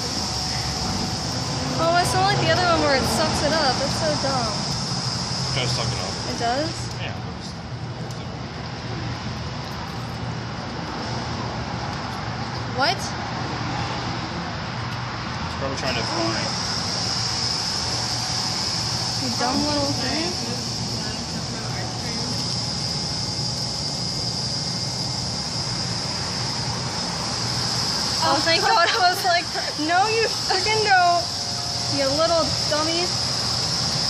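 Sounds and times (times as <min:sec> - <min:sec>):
high-pitched hiss: 0:00.0 - 0:07.6, 0:15.6 - 0:34.0
mechanical hum of machine arm: 0:00.0 - 0:34.0.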